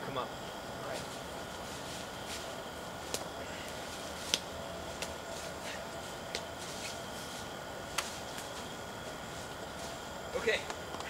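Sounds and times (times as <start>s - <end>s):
steady hiss: 0.0s - 11.0s
twigs crackling and snapping: 1.8s - 7.0s, 7.9s - 10.0s.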